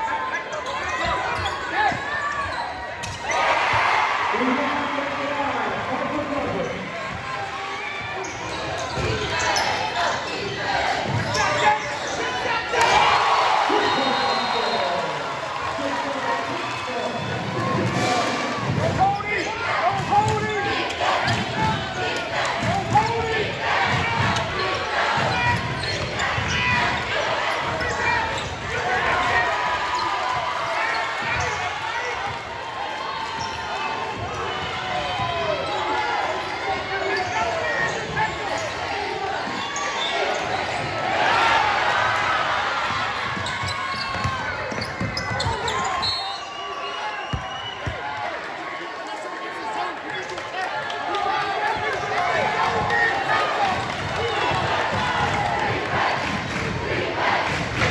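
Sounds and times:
voices of players and crowd: 0.0s - 57.9s
basketball bouncing on court: 22.5s - 27.0s, 42.8s - 45.8s.

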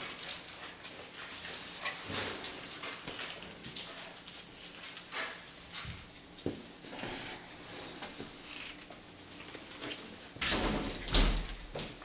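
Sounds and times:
paws scuffling on floor: 0.0s - 10.4s.

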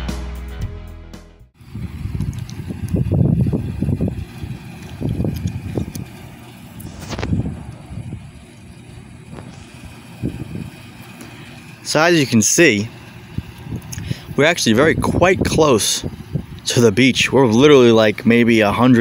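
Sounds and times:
wind buffeting microphone: 1.6s - 19.0s.

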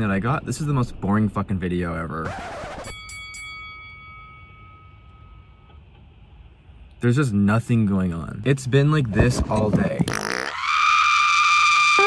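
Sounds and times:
bell-like chime ringing: 2.8s - 5.8s
low steady hum: 2.9s - 10.2s.

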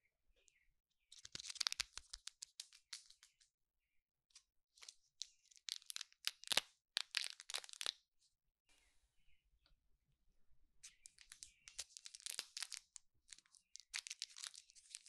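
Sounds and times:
plastic wrapper crinkling: 1.1s - 3.4s, 4.8s - 8.0s, 11.1s - 15.0s.

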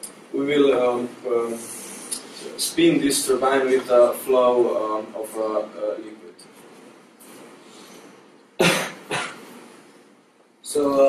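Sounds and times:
person coughing: 8.6s - 9.4s.

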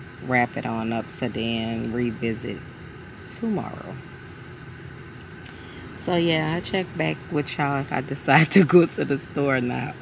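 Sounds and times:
car cabin hum: 0.2s - 2.6s, 4.8s - 10.0s.

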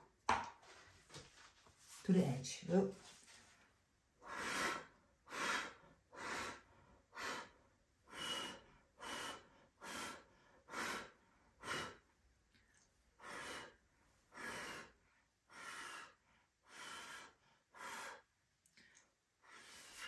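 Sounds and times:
person blowing breathy puffs: 4.2s - 12.0s.

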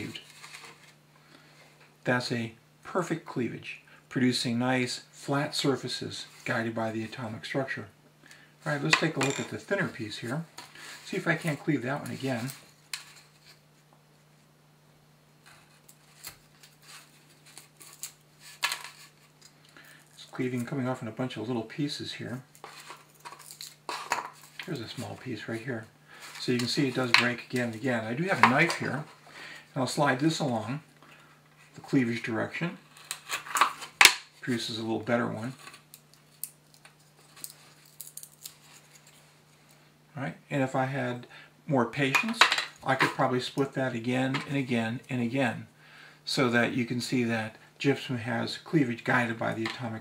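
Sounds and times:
crystal sheets clicking and crackling: 22.5s - 24.7s, 35.6s - 39.2s.

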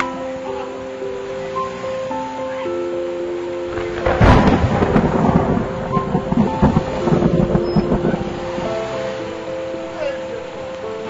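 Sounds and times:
background music notes: 0.0s - 11.0s
thunder crack and rumble: 3.7s - 9.0s.

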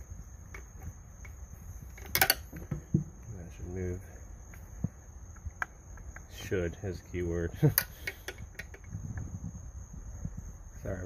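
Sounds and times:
camera handling rumble: 0.5s - 3.2s.

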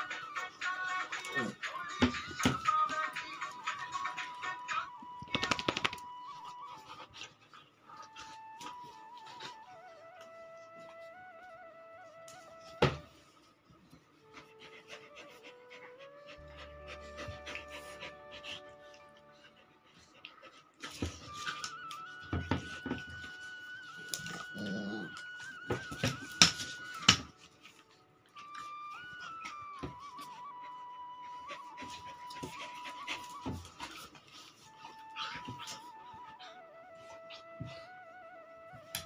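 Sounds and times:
background music: 0.0s - 7.2s, 7.9s - 39.0s
dogs scuffling: 5.3s - 6.2s
dog panting softly: 6.0s - 11.2s, 12.4s - 39.0s
dog growling: 24.2s - 25.5s.

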